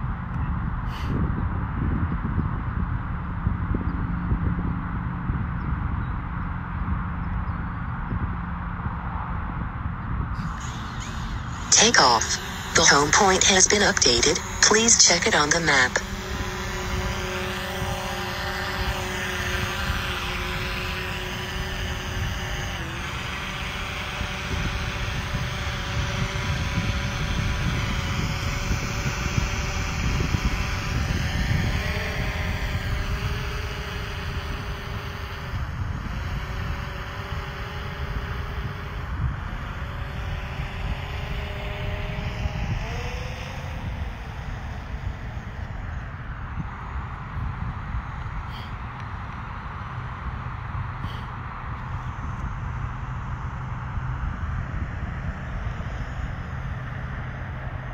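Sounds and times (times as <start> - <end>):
low rumbling noise: 0.0 - 57.9
drone propellers whining: 2.5 - 57.9.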